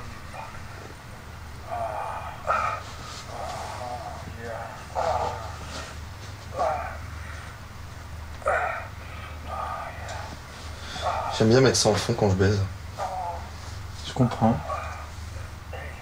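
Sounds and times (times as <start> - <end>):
steady low hum: 0.0 - 16.0
man moaning and gasping: 1.6 - 5.9, 6.5 - 7.5, 8.4 - 11.4, 13.0 - 13.7.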